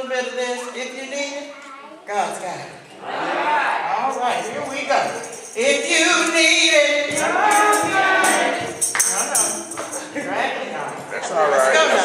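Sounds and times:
tambourine strokes: 0:04.1 - 0:11.1.

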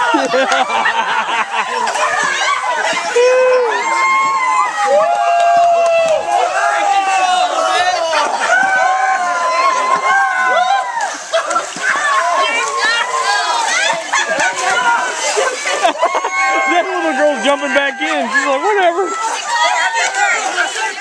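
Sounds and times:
people shrieking and yelling: 0:00.0 - 0:21.0
water splashing in a pool: 0:00.0 - 0:21.0.

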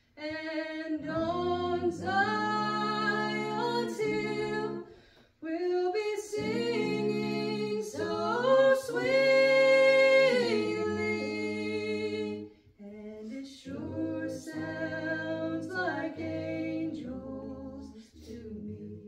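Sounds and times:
group singing a hymn unaccompanied: 0:00.2 - 0:19.0.

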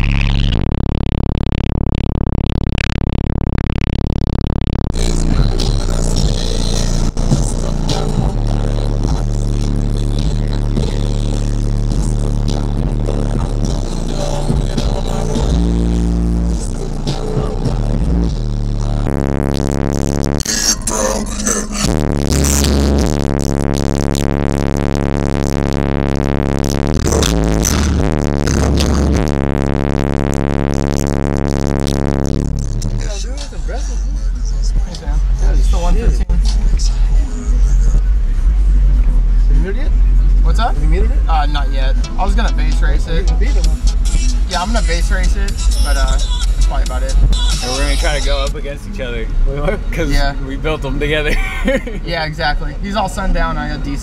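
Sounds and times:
bass-heavy electronic music: 0:00.0 - 0:54.0.

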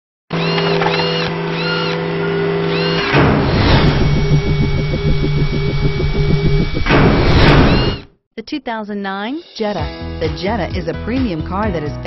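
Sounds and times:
low rapid pulsing hum: 0:02.8 - 0:08.0
noisy rumble: 0:03.0 - 0:08.0.

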